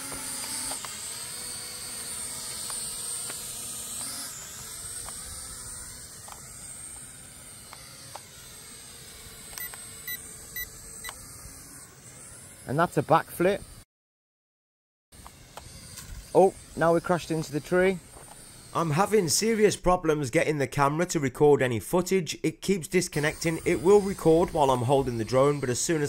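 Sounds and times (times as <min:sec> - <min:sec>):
toy drone motors whining: 0:00.0 - 0:13.9, 0:15.2 - 0:20.1, 0:22.8 - 0:26.0.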